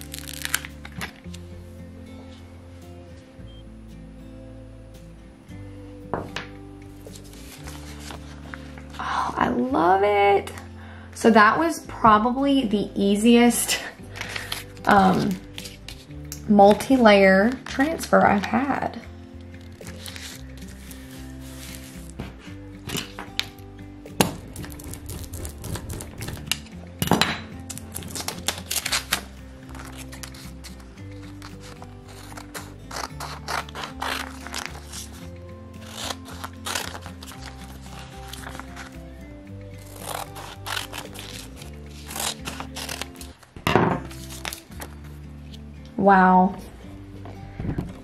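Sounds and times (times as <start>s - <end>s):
scissors snipping tape: 0.0s - 1.2s, 24.2s - 26.7s, 27.7s - 35.2s, 35.8s - 39.0s, 39.8s - 43.4s
music with held notes: 0.0s - 48.0s.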